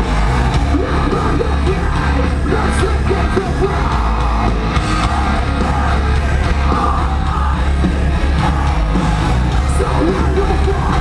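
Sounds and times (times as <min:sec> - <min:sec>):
live rock band playing: 0:00.0 - 0:11.0
vocalist yelling and singing: 0:00.0 - 0:11.0.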